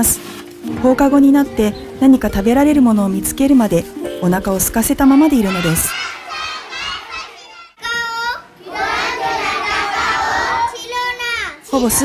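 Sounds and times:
children's voices overlapping: 4.9 - 12.0
child's high voice: 5.0 - 12.0.

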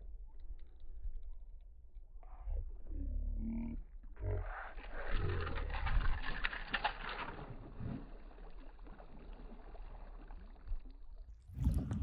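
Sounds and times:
deep splashing and rumble: 4.8 - 12.0.

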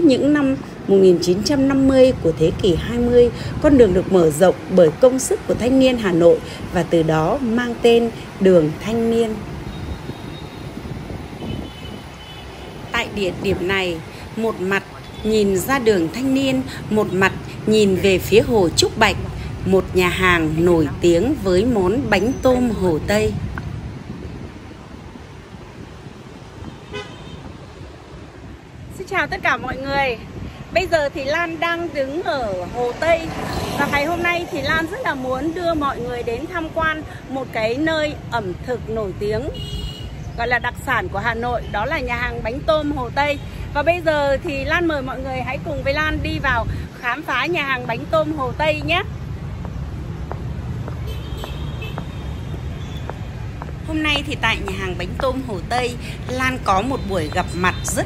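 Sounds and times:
road traffic rumble: 0.0 - 58.0
vehicle horn toot: 26.8 - 27.5, 39.6 - 40.1, 51.0 - 53.0.

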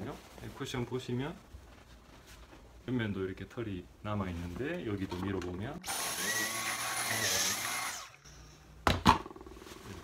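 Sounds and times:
vacuum cleaner whine and suction: 5.8 - 8.2.

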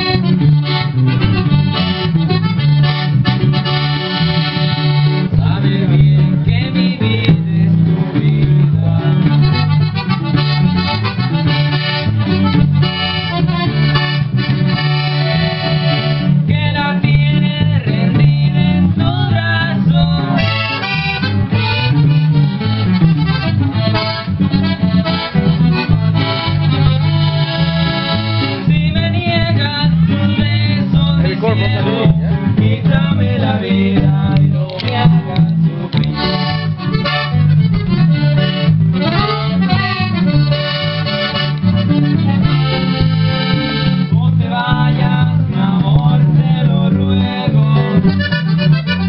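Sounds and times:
accordion melody: 0.0 - 49.0
electric bass line: 0.0 - 49.0
electric guitar: 0.0 - 49.0.

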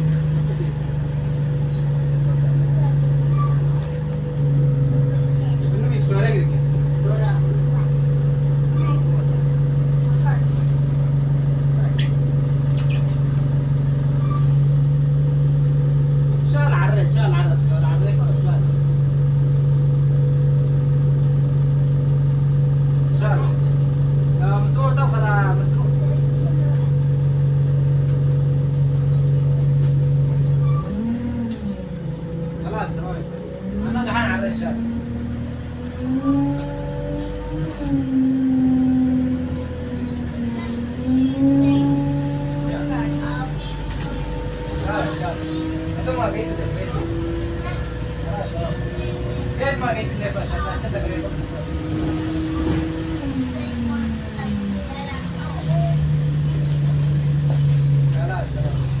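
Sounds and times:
bus diesel engine: 0.0 - 59.0.

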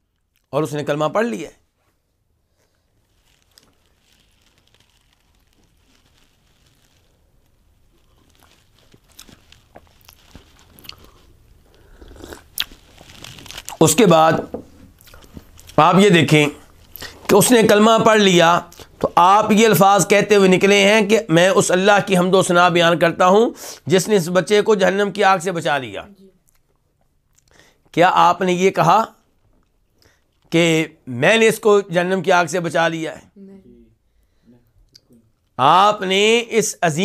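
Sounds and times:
man slurping and swallowing: 9.2 - 13.8
man speaking: 17.3 - 26.2, 30.5 - 37.0.

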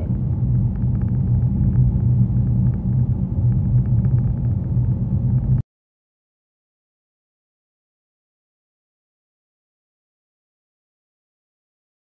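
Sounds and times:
engine and tyre rumble: 0.0 - 5.6.

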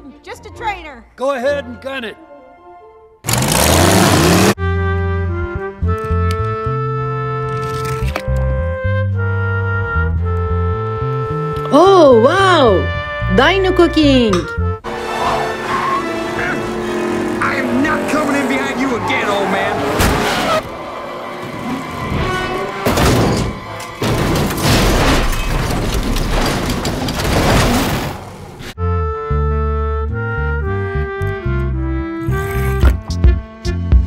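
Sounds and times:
race soundtrack music: 0.0 - 7.7, 8.3 - 24.7, 28.8 - 34.0
car engines: 3.2 - 4.6, 14.8 - 28.8
stepping notes over bass line: 8.3 - 14.8, 28.8 - 34.0
car crashing and tumbling: 19.1 - 28.8.

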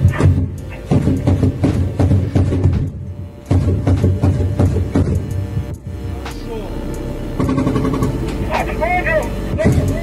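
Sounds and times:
heavy armoured vehicle engine running: 0.0 - 10.0
men calling out: 8.4 - 10.0.

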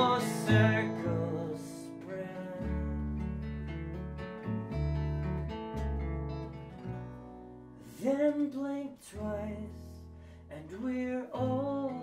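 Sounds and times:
acoustic guitar strumming: 0.0 - 12.0
double bass plucking: 0.0 - 12.0.

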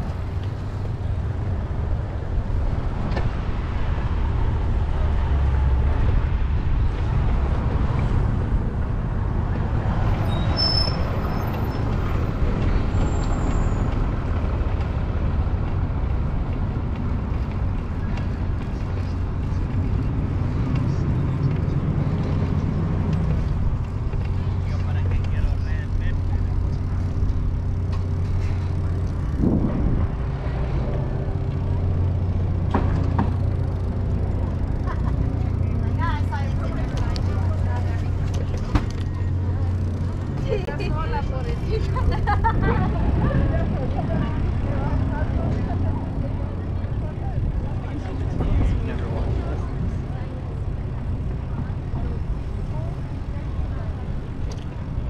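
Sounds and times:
bicycle tyres rolling on pavement: 0.0 - 55.0
wind rumbling on microphone: 28.6 - 32.6, 41.5 - 55.0.

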